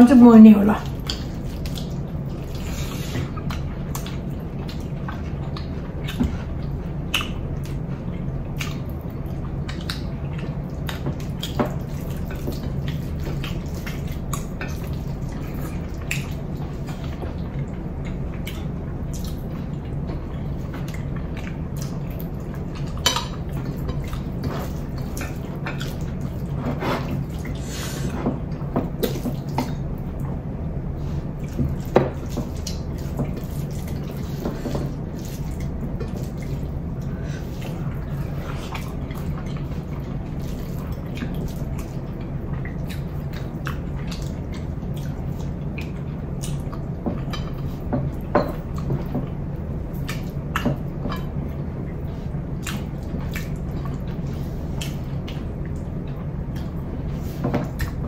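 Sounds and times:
low steady hum: 0.0 - 58.0
wet chewing: 0.8 - 30.4, 31.0 - 58.0.

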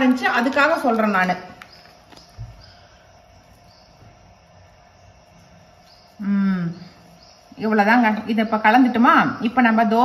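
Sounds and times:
steady faint hum: 0.0 - 10.0.

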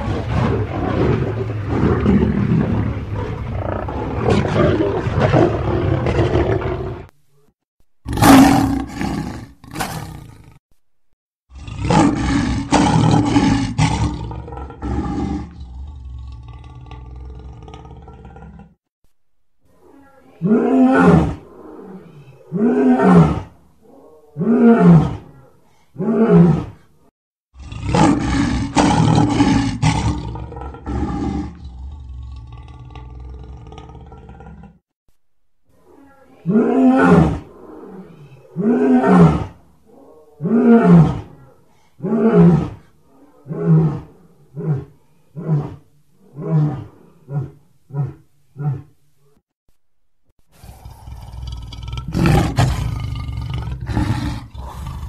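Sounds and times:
lions roaring: 0.0 - 7.1, 27.6 - 34.8, 50.6 - 55.0
short grunting roars: 50.6 - 55.0.

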